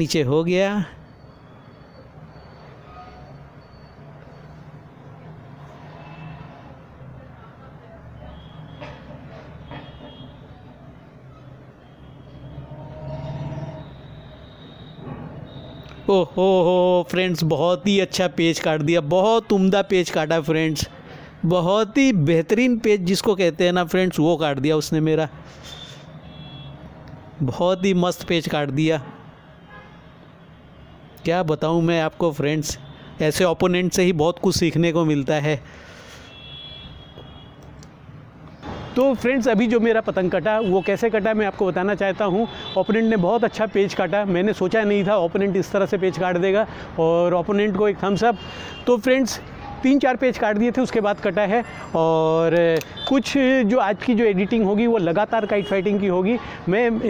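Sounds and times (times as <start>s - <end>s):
city traffic noise: 0.0s - 57.0s.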